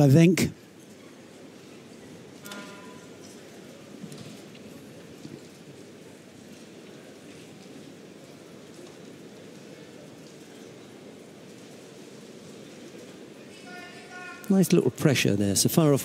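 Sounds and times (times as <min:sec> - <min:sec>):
arena crowd murmur: 0:03.0 - 0:16.0.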